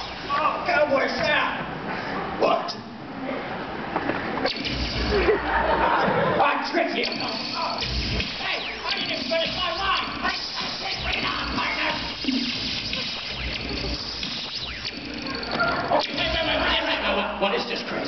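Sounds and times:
audience laughing and chattering: 3.2 - 6.7.

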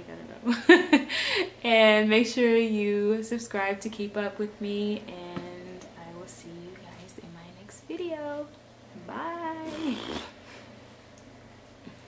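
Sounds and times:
woman making wordless sounds: 7.8 - 10.2.

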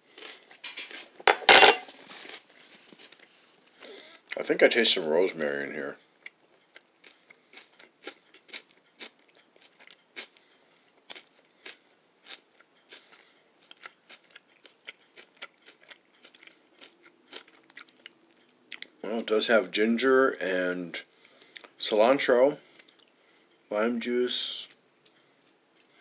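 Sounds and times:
chewing crunchy salad: 2.0 - 3.9, 6.2 - 19.0, 22.6 - 23.2.

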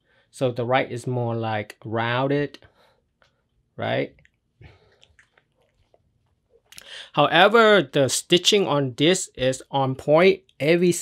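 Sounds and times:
short breath: 6.8 - 7.2.

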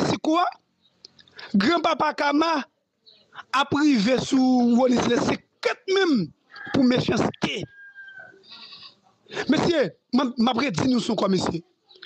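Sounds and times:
man speaking: 0.0 - 0.7, 1.3 - 7.7, 9.3 - 11.8.

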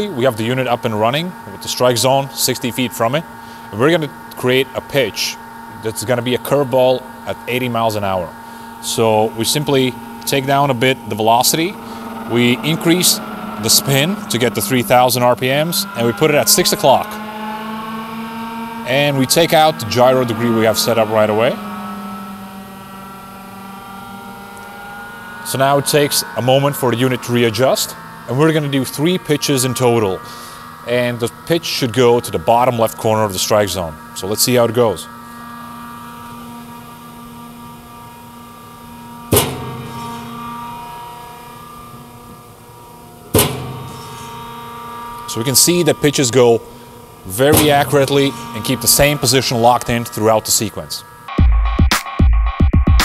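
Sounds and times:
pitching machine humming: 0.0 - 52.2.

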